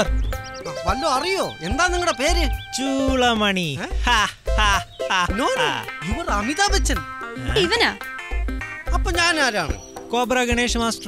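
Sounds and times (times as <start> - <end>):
film background music: 0.0 - 11.0.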